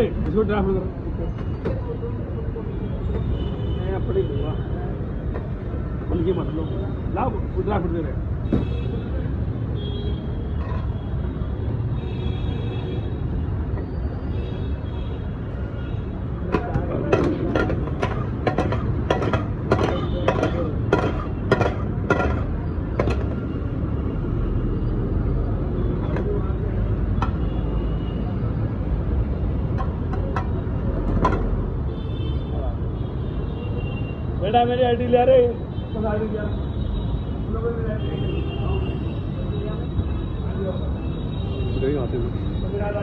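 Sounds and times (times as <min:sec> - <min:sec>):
low rumble of street noise: 0:00.0 - 0:43.0.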